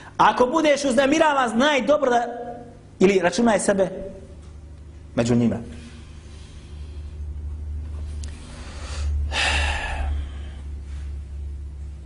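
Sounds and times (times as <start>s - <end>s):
low electrical hum: 0.0s - 12.0s
man's sharp intake of breath: 8.4s - 10.8s.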